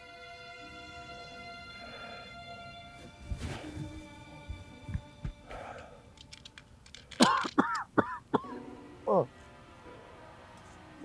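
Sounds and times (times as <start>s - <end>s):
soft background music: 0.0s - 11.0s
man murmuring wordlessly: 9.0s - 9.3s.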